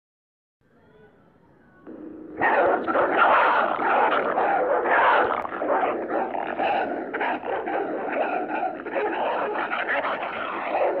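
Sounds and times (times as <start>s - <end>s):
dogs barking and growling: 1.9s - 11.0s.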